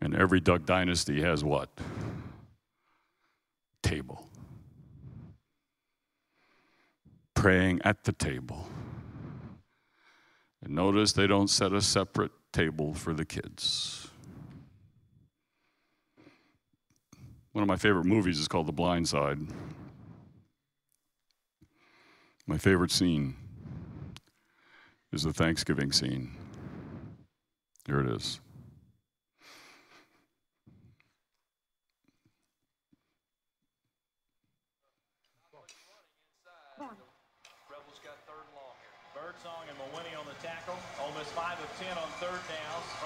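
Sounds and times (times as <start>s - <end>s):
person speaking: 3.8s - 4.5s
overlapping voices: 36.8s - 43.0s.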